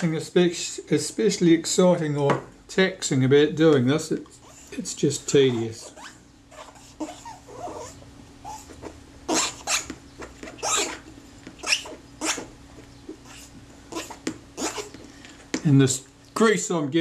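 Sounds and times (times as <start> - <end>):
faint steady hum: 0.0 - 17.0
cotton swab scratchy rubbing: 4.4 - 12.5, 13.1 - 15.0.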